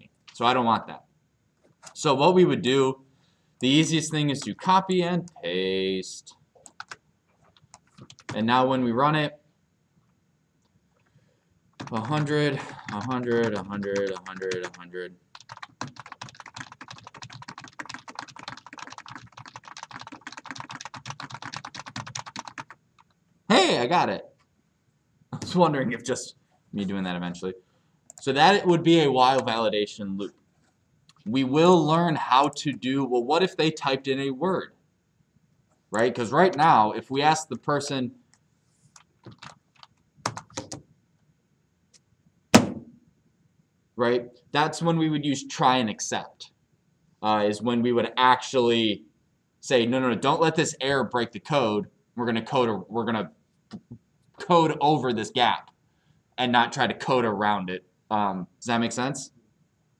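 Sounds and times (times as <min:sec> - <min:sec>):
fast typing on keyboard: 0:06.6 - 0:08.4, 0:11.8 - 0:23.2, 0:39.0 - 0:40.8
sharp knock: 0:42.6 - 0:43.0.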